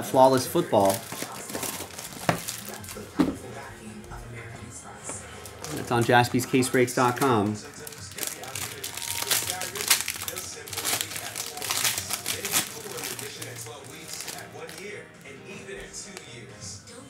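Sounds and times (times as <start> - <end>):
foil wrapper tearing and crinkling: 0.3 - 3.2, 5.4 - 15.0.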